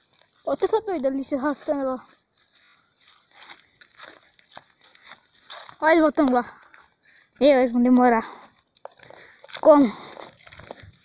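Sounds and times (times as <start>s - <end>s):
rustling in dry leaves: 0.0s - 11.0s
soft crunches: 1.4s - 7.0s, 7.7s - 11.0s.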